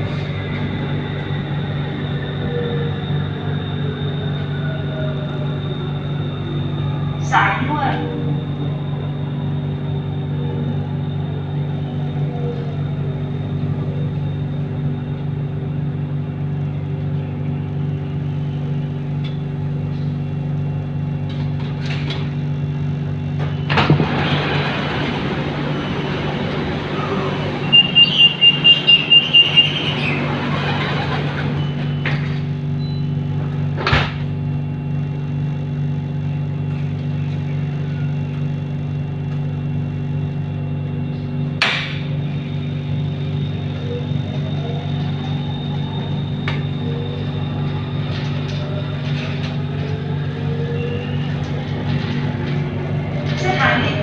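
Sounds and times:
train equipment humming: 0.0 - 54.0
high warning beeps: 27.6 - 30.0.

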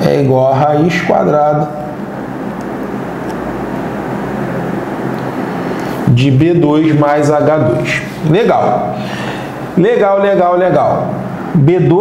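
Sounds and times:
fan or air conditioner drone: 0.0 - 12.0.

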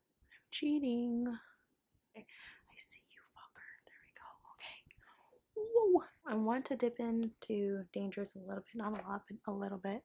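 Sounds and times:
woman whispering: 2.7 - 5.0
woman speaking: 5.6 - 10.0.

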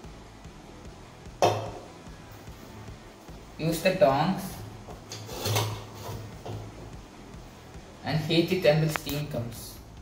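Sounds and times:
metal tongs scraping a can: 5.1 - 6.2.

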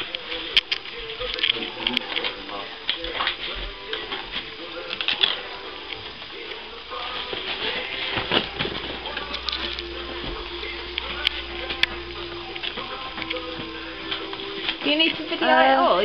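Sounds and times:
faint music: 0.0 - 16.0
low voices: 0.0 - 16.0.

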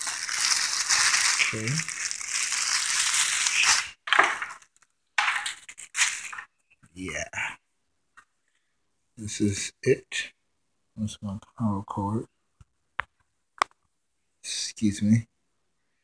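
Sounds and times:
plastic wrapping crinkling: 0.0 - 6.6.

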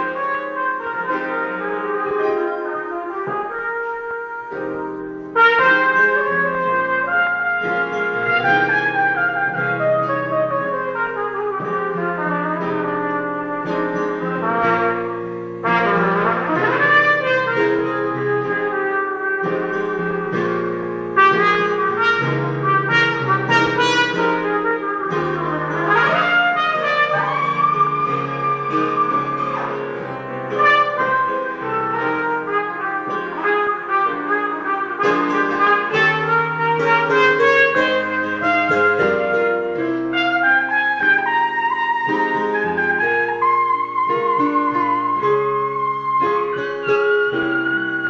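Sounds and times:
piano accompaniment: 0.0 - 48.0
trumpet melody: 0.0 - 48.0.

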